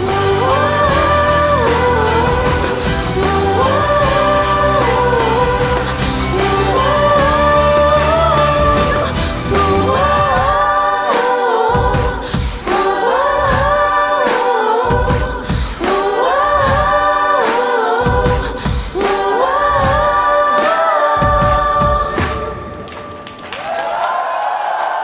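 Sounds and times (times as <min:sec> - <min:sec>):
woman singing into a microphone: 0:00.0 - 0:22.6.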